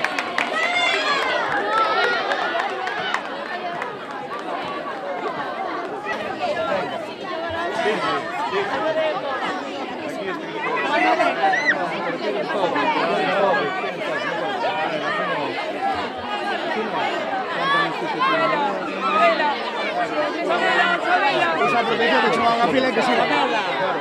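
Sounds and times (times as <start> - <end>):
crowd chattering: 0.0 - 24.0.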